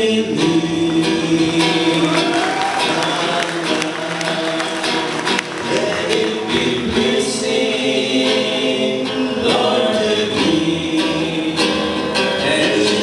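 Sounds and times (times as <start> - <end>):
men singing gospel song: 0.0 - 13.0
strummed acoustic guitar: 0.0 - 13.0.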